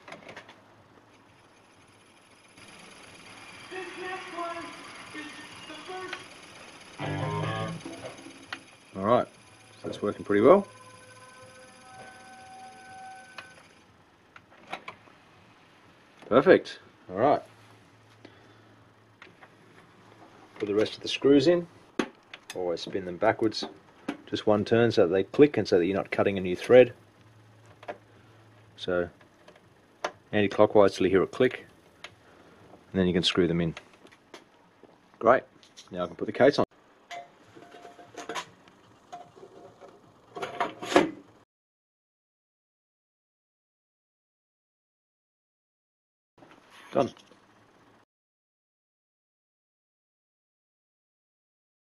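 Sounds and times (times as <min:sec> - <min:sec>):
cd player whine: 0:02.4 - 0:13.9.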